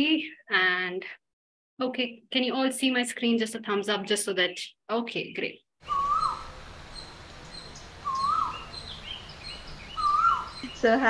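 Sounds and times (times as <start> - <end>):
bird whistled call: 5.8 - 10.8
steady background hiss: 5.8 - 11.0.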